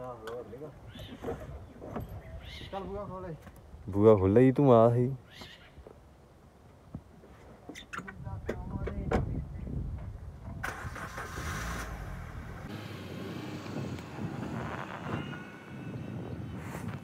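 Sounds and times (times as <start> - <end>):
car engine starting and running: 10.5 - 15.9.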